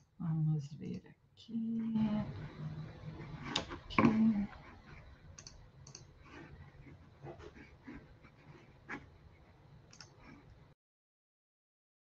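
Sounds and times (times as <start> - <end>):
keyboard and mouse clicks: 5.4 - 6.5, 9.9 - 10.5.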